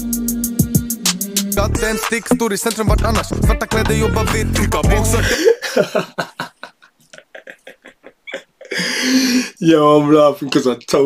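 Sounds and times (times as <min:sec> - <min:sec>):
hip-hop track: 0:00.0 - 0:05.4
man laughing in short bursts: 0:05.1 - 0:09.5.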